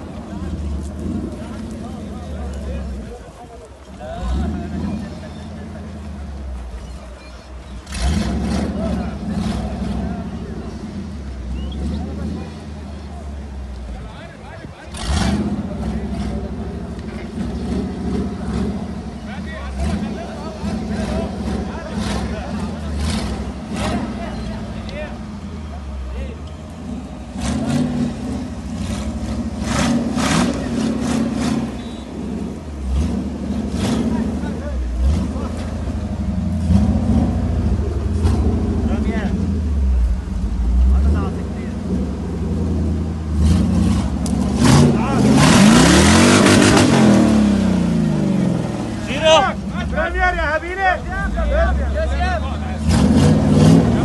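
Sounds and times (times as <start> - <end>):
car engine revving: 0.0 - 54.0.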